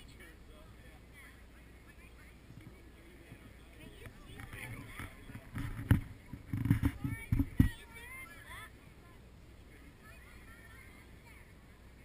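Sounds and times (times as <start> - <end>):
low thumps on microphone: 2.5 - 7.9.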